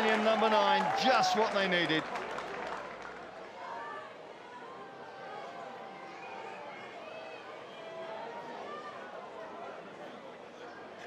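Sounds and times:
distant crowd voices and calls: 0.0 - 11.0.

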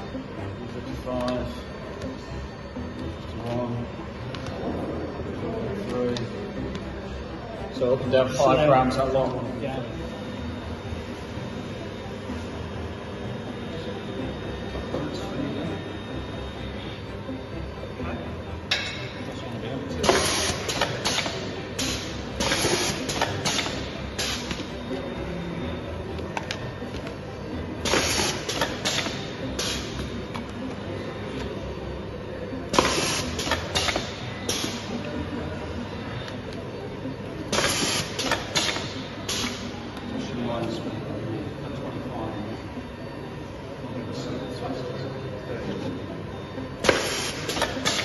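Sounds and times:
machine hum: 0.0 - 48.0.

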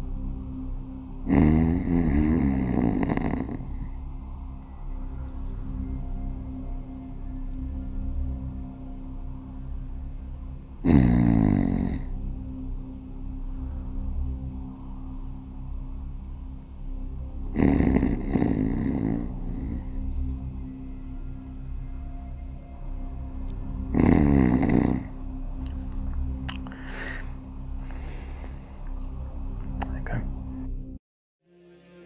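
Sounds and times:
man snoring loudly: 1.2 - 4.0, 10.8 - 12.2, 17.5 - 20.1, 23.8 - 25.8.

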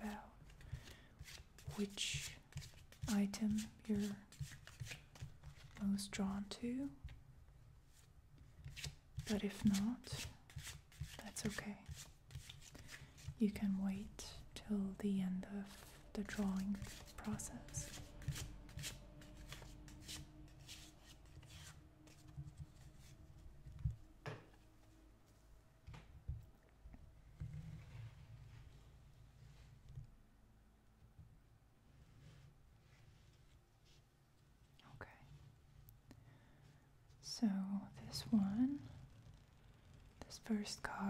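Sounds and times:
cards being shuffled: 0.5 - 5.8, 8.6 - 13.4, 15.7 - 23.2
person speaking softly: 13.3 - 18.3.

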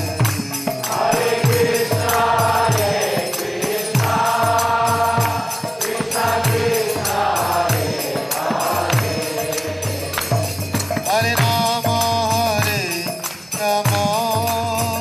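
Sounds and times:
drum beating steady rhythm: 0.0 - 15.0
hand cymbals clashing: 0.0 - 15.0
group chanting: 0.8 - 10.6.

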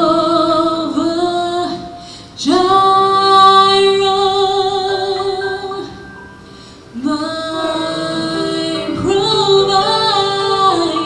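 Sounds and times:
woman singing gospel: 0.0 - 5.9, 7.0 - 11.0.

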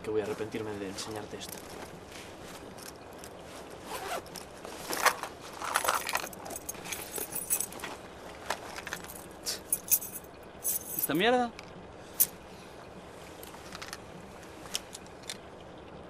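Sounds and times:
rustling inside bag: 0.2 - 11.1
bag zipper opening: 3.8 - 7.7.

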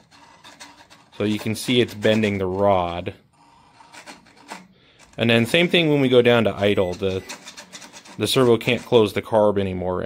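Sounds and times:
faint scraping: 0.0 - 9.3.

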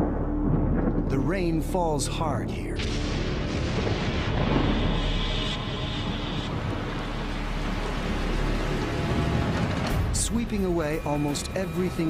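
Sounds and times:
soft background music: 0.0 - 12.0
low thunder rumbling: 2.8 - 10.9.

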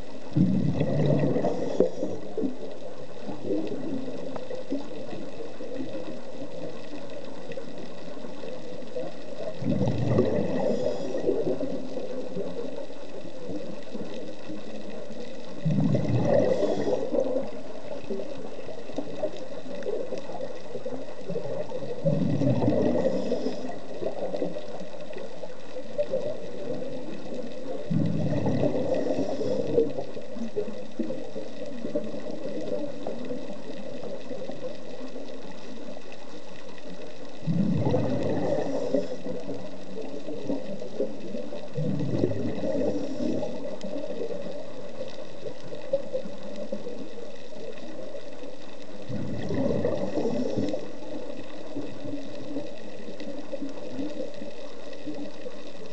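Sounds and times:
diver's exhaled bubbles underwater: 0.0 - 55.9
underwater background hiss: 0.0 - 55.9.

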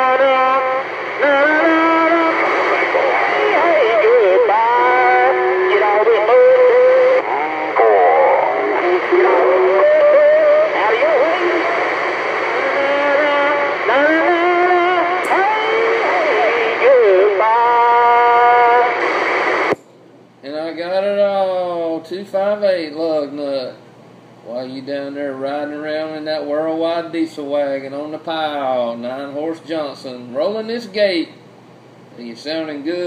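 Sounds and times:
warbling radio voices: 0.0 - 19.7
steady radio tone: 0.0 - 19.8.

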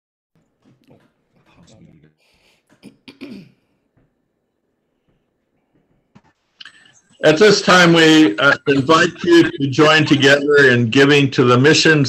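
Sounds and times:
person clearing throat: 2.8 - 3.7.

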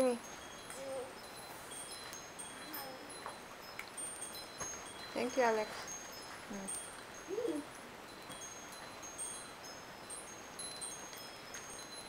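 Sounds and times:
high chime-like tones: 0.0 - 12.0
steady low hiss: 0.0 - 12.0.

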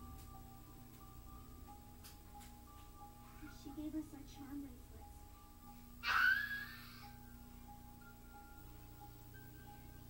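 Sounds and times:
soft music with held notes: 0.0 - 10.0.

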